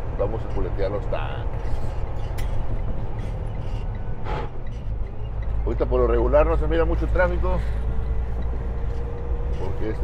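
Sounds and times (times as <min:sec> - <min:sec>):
truck engine and road rumble: 0:00.0 - 0:10.0.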